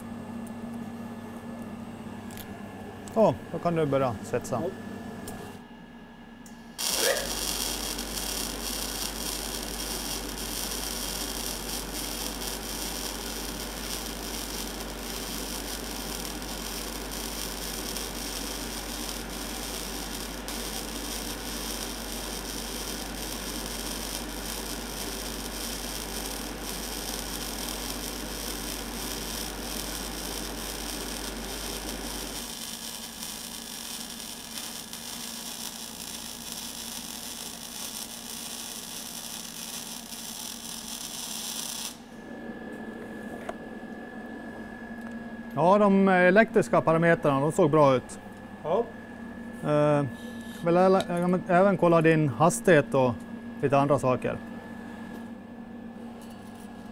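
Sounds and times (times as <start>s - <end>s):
welding arc hissing: 6.8s - 42.2s.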